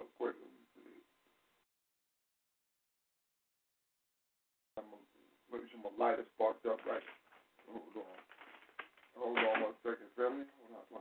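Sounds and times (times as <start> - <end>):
person talking: 5.6 - 8.3, 9.2 - 11.0.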